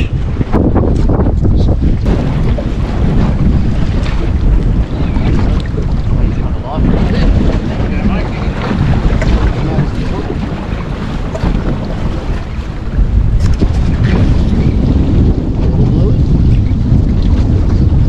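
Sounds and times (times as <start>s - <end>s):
choppy water washing around boat: 0.0s - 18.0s
wind buffeting microphone: 0.0s - 18.0s.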